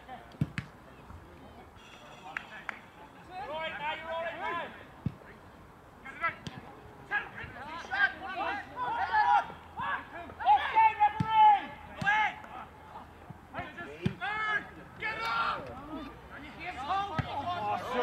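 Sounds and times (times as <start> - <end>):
footballers shouting: 3.2 - 5.0, 7.0 - 18.0.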